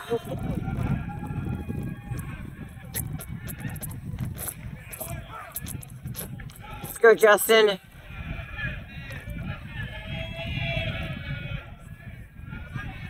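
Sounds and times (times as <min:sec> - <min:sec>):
distant voices of spectators: 0:00.0 - 0:13.0.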